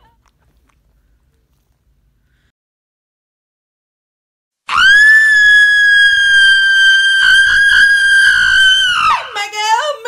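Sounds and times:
woman screaming: 0:04.7 - 0:09.7.

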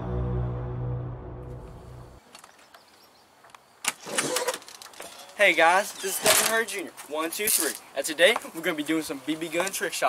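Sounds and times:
held bass notes of music: 0:00.0 - 0:02.2.

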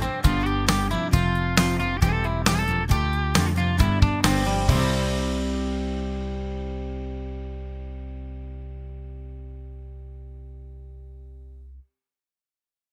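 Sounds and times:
outro music: 0:00.0 - 0:10.8
guitar chord ringing out: 0:00.0 - 0:11.6.

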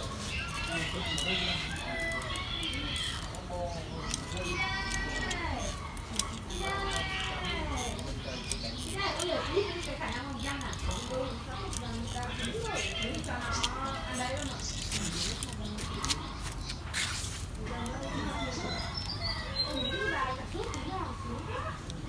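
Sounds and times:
children chattering: 0:00.0 - 0:22.0
pruning shears snipping: 0:00.2 - 0:22.0.

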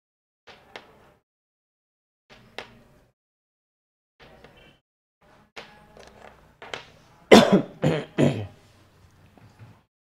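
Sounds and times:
person coughing: 0:07.3 - 0:08.6.

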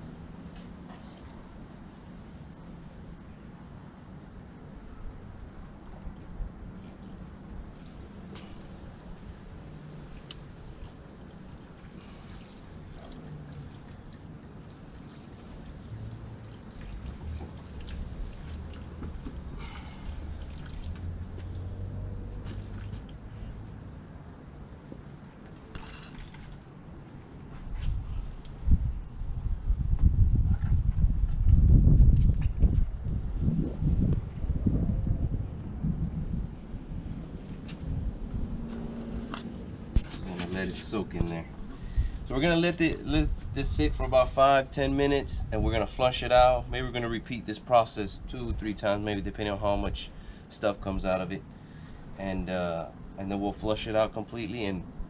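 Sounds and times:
liquid trickling and dripping: 0:00.4 - 0:24.0, 0:24.7 - 0:27.2
wind rumbling on microphone: 0:25.6 - 0:47.2, 0:48.2 - 0:50.2.

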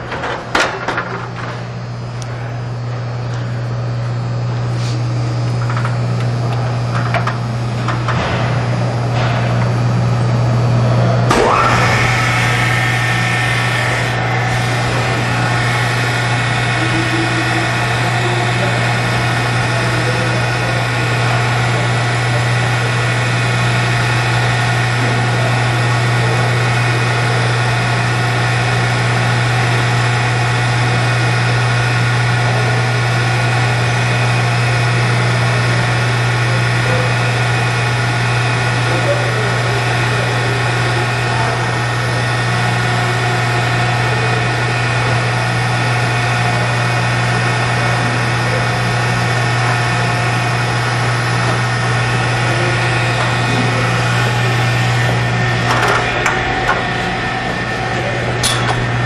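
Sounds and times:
electric motor hum: 0:01.6 - 0:59.0.

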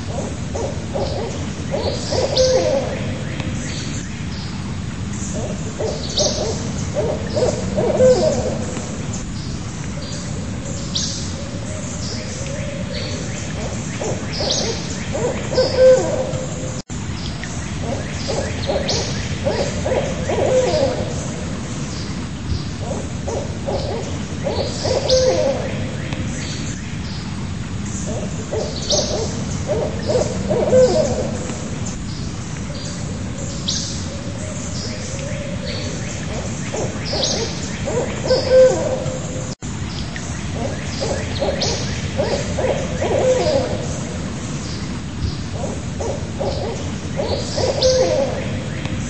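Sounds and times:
owl hooting: 0:00.0 - 0:03.6, 0:05.3 - 0:08.9, 0:12.9 - 0:16.6, 0:17.8 - 0:21.6, 0:22.8 - 0:26.3, 0:28.0 - 0:31.8, 0:35.2 - 0:39.5, 0:40.5 - 0:44.3, 0:45.5 - 0:49.0.

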